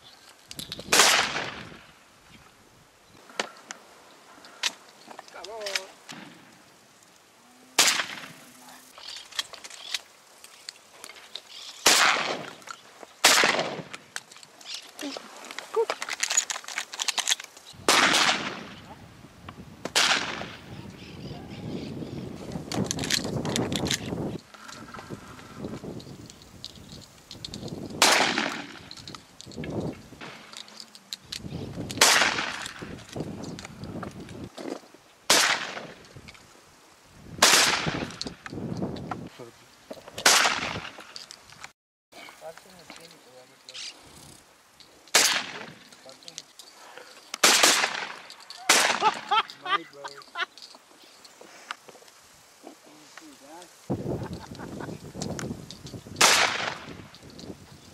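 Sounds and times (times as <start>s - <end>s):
shotgun shots: 0.9s - 1.7s, 7.8s - 8.3s, 11.8s - 12.5s, 13.2s - 13.9s, 17.9s - 18.8s, 19.9s - 20.6s, 28.0s - 28.8s, 32.0s - 32.8s, 35.3s - 36.0s, 37.4s - 38.2s, 40.2s - 41.0s, 45.1s - 45.8s, 47.4s - 49.2s, 56.2s - 56.9s.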